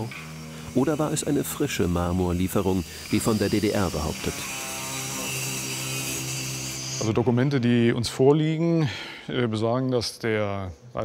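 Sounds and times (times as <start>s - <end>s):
angle grinder cutting stone: 0.0s - 8.0s.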